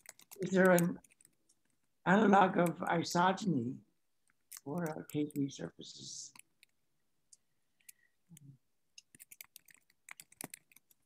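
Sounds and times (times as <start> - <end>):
faint irregular clicking: 0.0 - 2.0, 2.6 - 2.9, 4.2 - 11.0.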